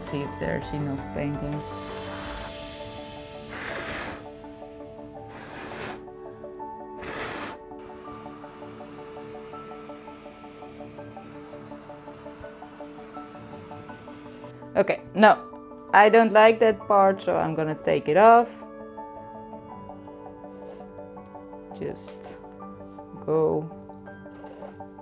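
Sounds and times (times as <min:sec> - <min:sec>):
background music: 0:00.0 - 0:25.0
air bursts hissing: 0:01.8 - 0:06.1, 0:07.0 - 0:14.5.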